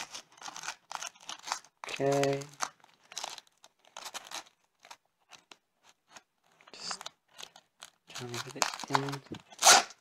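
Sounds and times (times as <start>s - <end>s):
velcro strap scratchy rustles: 0.0s - 10.0s.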